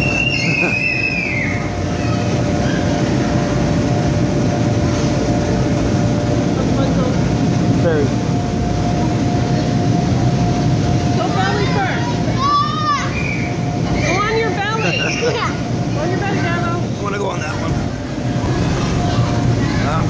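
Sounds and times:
child's voice: 0:11.6 - 0:14.2
electric blowers rumbling: 0:15.3 - 0:20.0.

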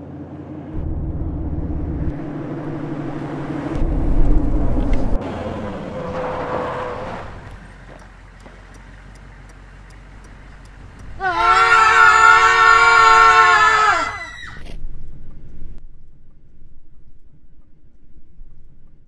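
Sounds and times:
steady whine: 0:00.0 - 0:08.5
car engine and road noise: 0:00.0 - 0:19.0.

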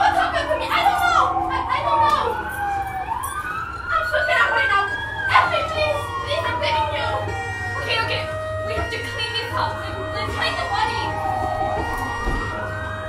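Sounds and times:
siren wailing: 0:00.0 - 0:13.0.

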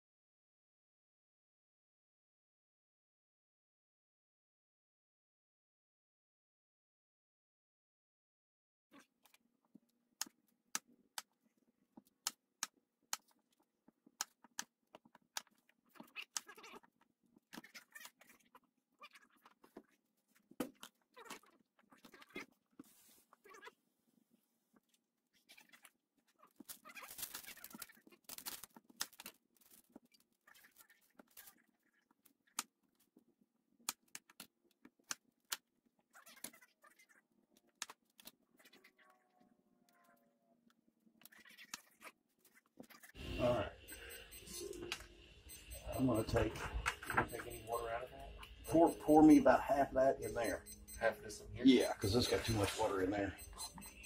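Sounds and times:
onion skin rustling: 0:26.5 - 0:31.7.

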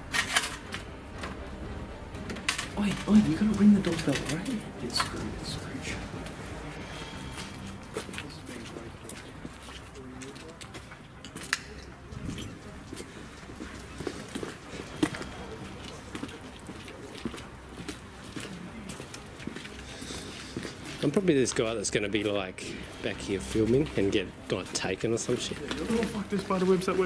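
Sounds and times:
quiet murmured talk: 0:00.0 - 0:27.0.

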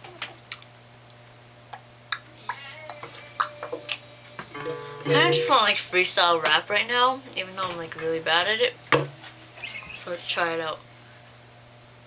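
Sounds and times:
acoustic guitar strings ringing: 0:04.5 - 0:05.8.

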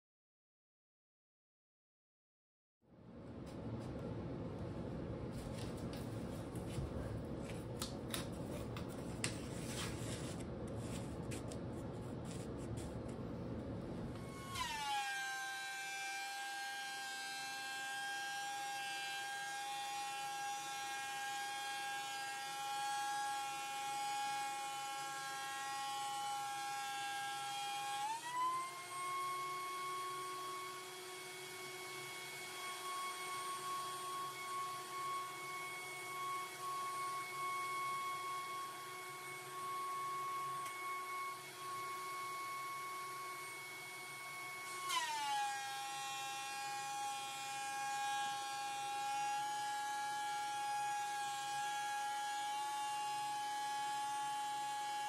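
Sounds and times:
thickness planer motor whine: 0:14.1 - 0:55.0.

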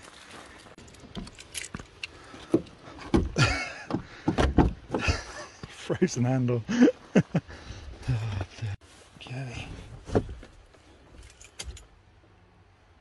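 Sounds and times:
door handle clunks and knocks: 0:03.1 - 0:05.1.

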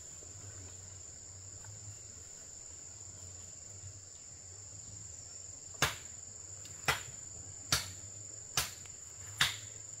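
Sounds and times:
insects droning: 0:00.0 - 0:10.0
blade chopping bamboo: 0:05.8 - 0:06.1, 0:06.8 - 0:07.1, 0:07.7 - 0:09.7.

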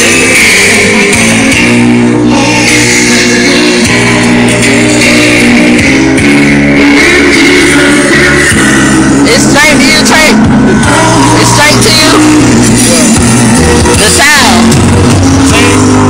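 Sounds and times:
loud music over loudspeaker: 0:00.0 - 0:16.0.

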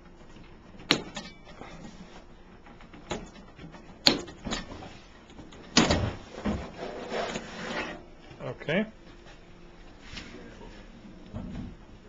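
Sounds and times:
cover scraping and rattling: 0:05.7 - 0:08.0.

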